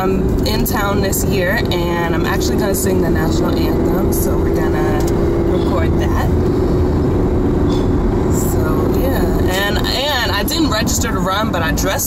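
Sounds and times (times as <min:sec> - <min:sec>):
person speaking: 0:00.0 - 0:06.5
car road and engine noise: 0:00.0 - 0:12.0.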